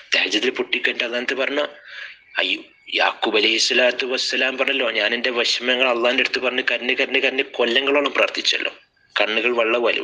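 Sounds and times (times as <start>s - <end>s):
man lecturing: 0.0s - 10.0s.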